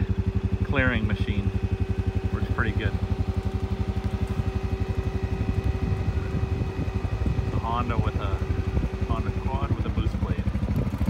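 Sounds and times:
atv engine puttering: 0.0s - 11.0s.

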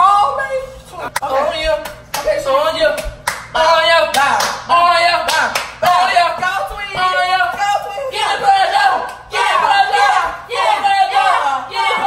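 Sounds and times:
hands clapping: 1.2s - 3.5s, 4.1s - 7.6s, 9.0s - 9.3s
people shouting and laughing: 5.8s - 12.0s.

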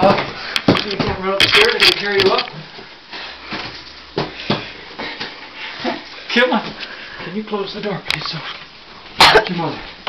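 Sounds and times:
footsteps on wooden stairs: 0.0s - 6.0s.

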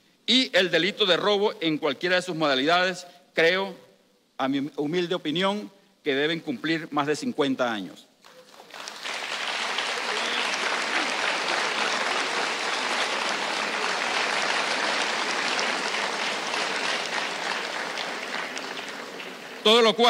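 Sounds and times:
audience applauding: 8.2s - 19.8s.

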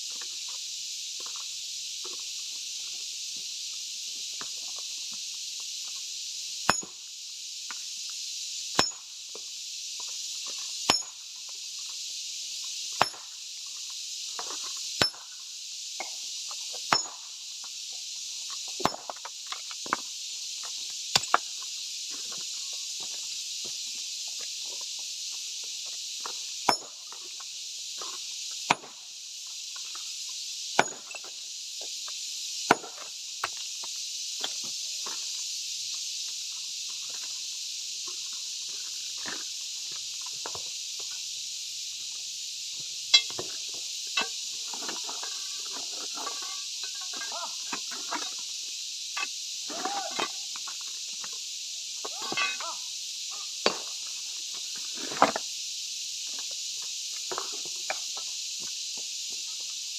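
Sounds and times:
steady high hiss: 0.0s - 59.9s
hammer cracking rock: 6.7s - 7.0s, 8.8s - 9.0s, 10.9s - 11.2s, 13.0s - 13.3s, 15.0s - 15.2s, 16.9s - 17.2s, 18.8s - 19.1s, 26.7s - 26.9s, 28.7s - 29.0s, 30.8s - 31.1s, 32.7s - 33.0s
loose stones clinking: 43.1s - 48.4s, 52.0s - 52.7s.

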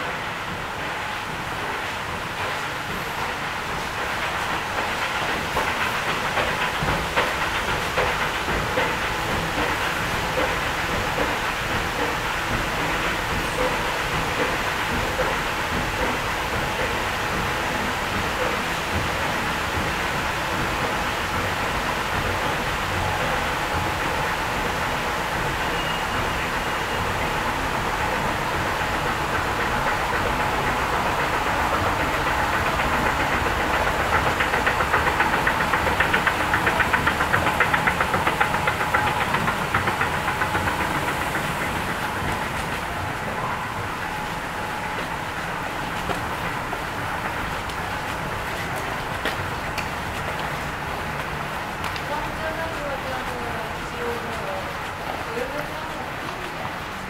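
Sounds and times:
escalator hum and rumble: 0.0s - 57.0s
escalator steps rattling: 0.0s - 57.0s.

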